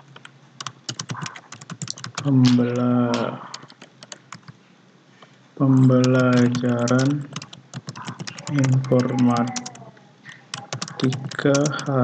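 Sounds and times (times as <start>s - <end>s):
keyboard key clicks: 5.9s - 11.9s.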